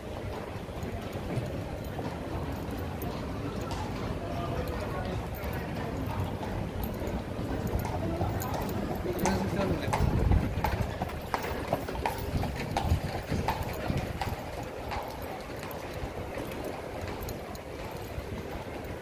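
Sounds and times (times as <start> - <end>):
horse hooves clip-clopping on asphalt: 0.0 - 19.0.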